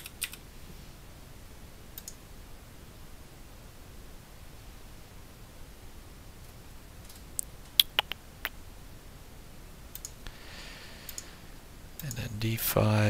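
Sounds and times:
mouse clicks and keystrokes: 0.0 - 0.4, 2.0 - 2.2, 9.9 - 10.2, 11.1 - 11.3, 12.0 - 12.2
low room noise: 0.0 - 13.0.

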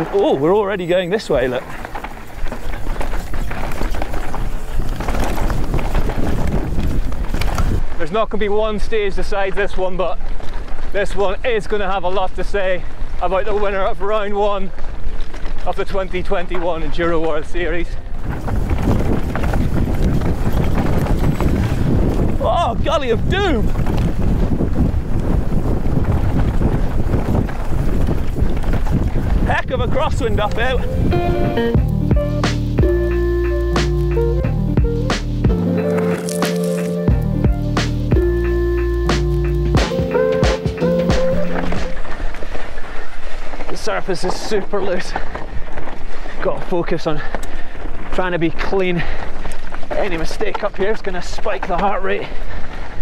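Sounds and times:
bike rattling over bumps: 0.0 - 33.1, 41.3 - 53.0
tyres crunching over dirt: 0.0 - 53.0
wind on microphone: 1.3 - 8.0, 17.8 - 32.4.

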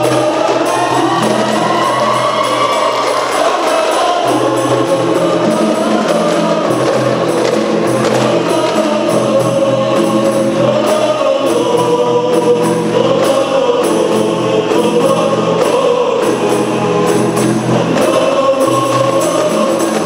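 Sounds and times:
frame drums beaten by hand: 0.0 - 20.0
men singing in unison: 0.0 - 20.0.

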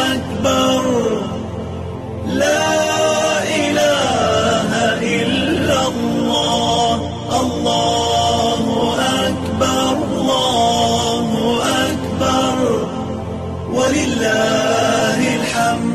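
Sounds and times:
person chanting: 0.0 - 15.9.

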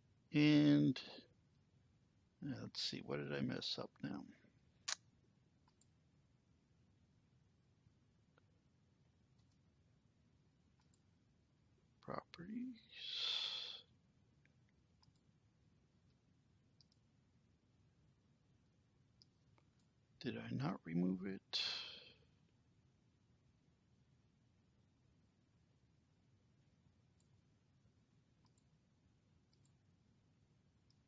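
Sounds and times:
computer mouse clicks: 5.6 - 6.0, 9.4 - 9.6, 10.8 - 11.1, 14.5 - 15.3, 16.8 - 17.1, 28.4 - 28.7, 29.5 - 29.8.

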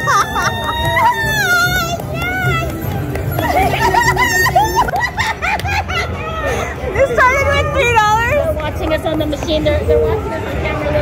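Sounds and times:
excited high-pitched voices: 0.0 - 5.2.

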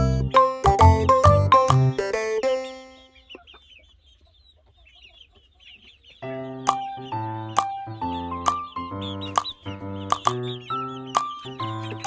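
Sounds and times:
music tune: 0.0 - 3.3
chicks peeping: 0.0 - 12.0.

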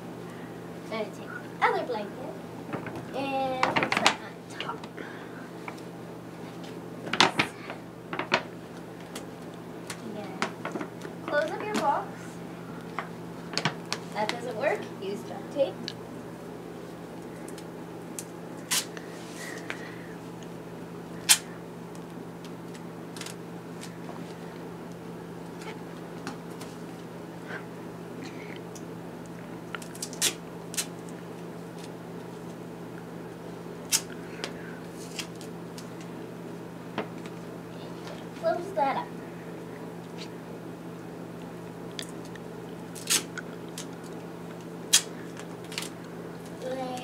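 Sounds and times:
duct tape ripping: 18.2 - 19.0, 21.2 - 21.5, 22.7 - 24.0, 29.7 - 31.0, 33.8 - 34.2, 42.2 - 44.0, 44.9 - 46.0.

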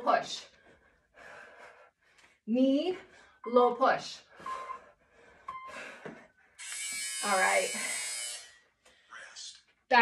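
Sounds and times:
electronic timer buzzer: 6.6 - 8.7.

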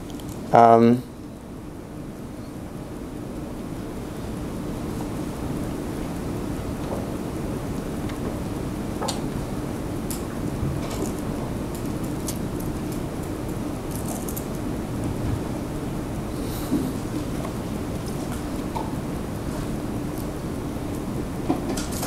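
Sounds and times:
small clicks and rustles: 0.0 - 0.4, 10.1 - 14.6
faint hum: 0.0 - 22.0.

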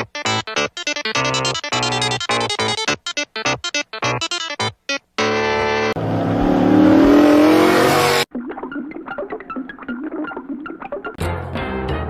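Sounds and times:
car engine accelerating: 5.4 - 8.3.

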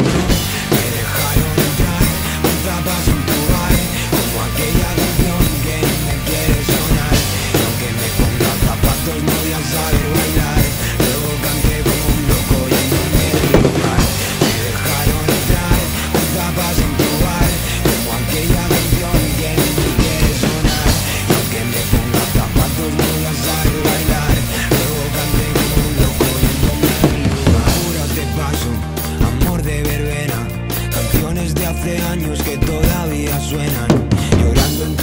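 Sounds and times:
band recording: 0.0 - 35.0
drum kit steady beat: 0.0 - 35.0
pop-rock backing track: 0.0 - 35.0.

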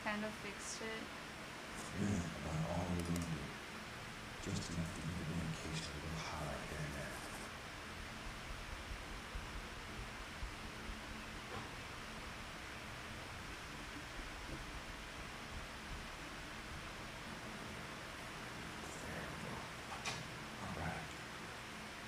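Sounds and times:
room noise hiss: 0.0 - 22.0.

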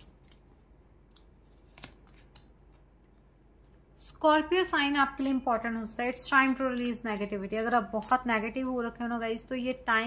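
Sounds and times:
cards snapping and rustling: 1.1 - 2.9.

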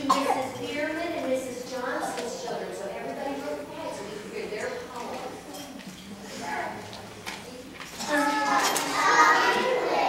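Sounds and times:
children speaking loudly: 8.0 - 10.0.

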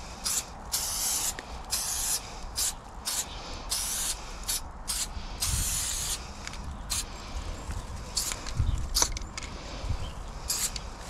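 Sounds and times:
spray paint can hissing: 0.0 - 6.2, 6.9 - 7.1, 8.2 - 9.1, 10.5 - 10.9.

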